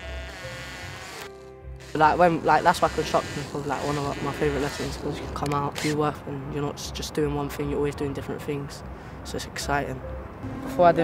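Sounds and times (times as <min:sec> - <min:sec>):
cordless drill motor whine: 0:00.0 - 0:05.0.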